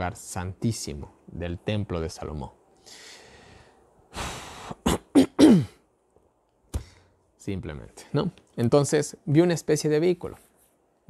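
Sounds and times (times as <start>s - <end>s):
man breathing in: 2.8s - 4.8s, 6.8s - 7.2s
man clearing throat: 4.8s - 5.8s.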